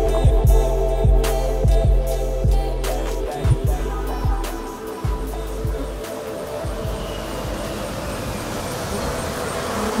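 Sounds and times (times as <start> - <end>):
deep bass trap beat: 0.0 - 7.8.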